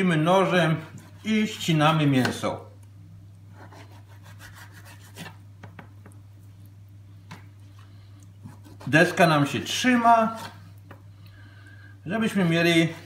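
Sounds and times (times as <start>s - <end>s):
knife scraping fish skin: 3.6s - 5.4s, 8.4s - 9.2s.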